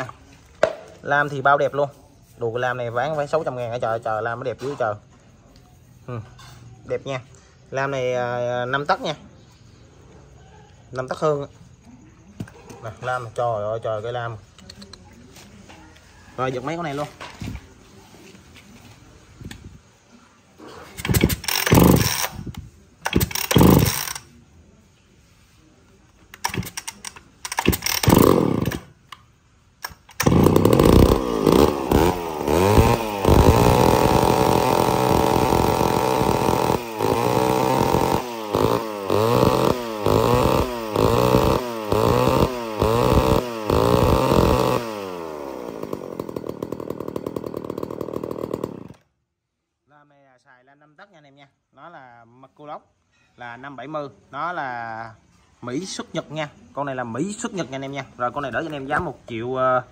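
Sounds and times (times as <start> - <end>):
chainsaw revving and idling: 2.6 - 4.7, 20.8 - 24.3, 26.3 - 29.0, 29.8 - 49.1
chainsaw starter cord pulls: 20.8 - 24.3, 26.2 - 49.1.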